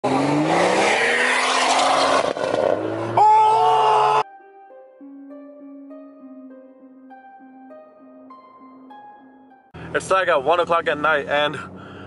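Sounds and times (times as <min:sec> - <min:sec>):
car engine accelerating hard: 0:00.0 - 0:03.3.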